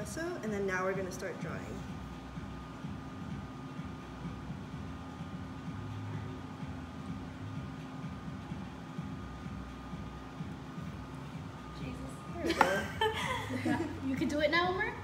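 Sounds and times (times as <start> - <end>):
faint constant tone: 0.0 - 15.0
low machine hum: 0.0 - 15.0.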